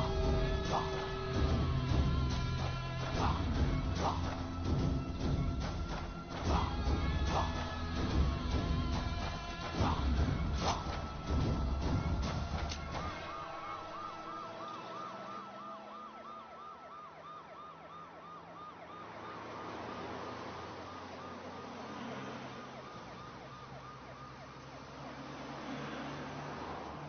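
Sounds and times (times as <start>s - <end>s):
police siren yelping: 0.0s - 7.8s, 9.8s - 25.3s
dramatic music and hits: 0.0s - 13.3s
low vehicle rumble: 0.0s - 27.0s.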